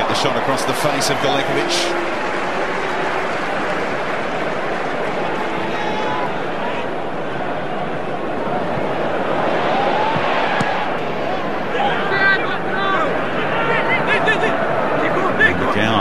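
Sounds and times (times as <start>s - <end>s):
stadium crowd noise: 0.0s - 16.0s.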